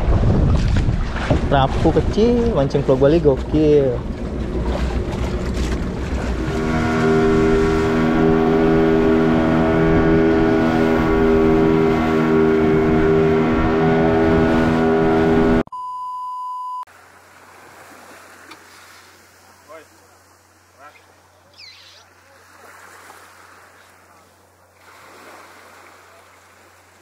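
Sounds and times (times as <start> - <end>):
rushing water: 0.0 - 15.6, 16.9 - 27.0
wind: 0.0 - 15.7, 16.9 - 27.0
boat engine droning: 0.9 - 15.7
high beep: 15.7 - 16.9.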